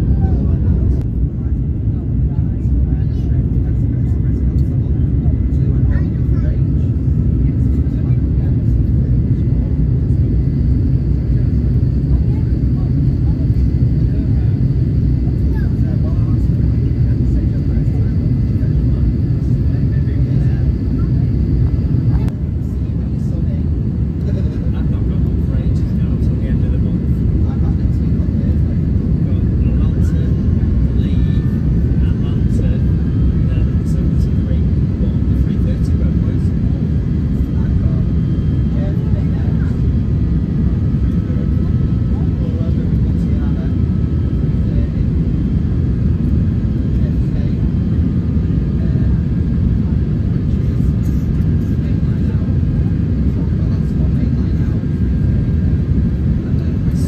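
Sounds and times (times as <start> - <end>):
airplane cabin engine roar: 0.0 - 57.0
faint voices: 0.0 - 57.0.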